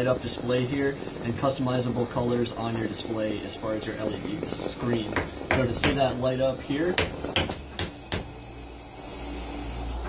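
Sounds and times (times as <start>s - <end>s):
vape airflow hiss: 0.0s - 10.0s.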